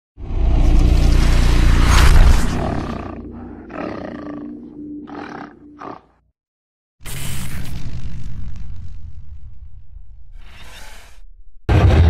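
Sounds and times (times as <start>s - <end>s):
animal roar: 2.5s - 6.1s.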